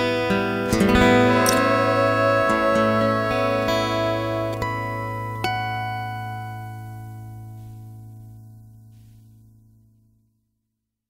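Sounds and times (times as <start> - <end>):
guitar chord strum ringing: 0.0 - 7.8.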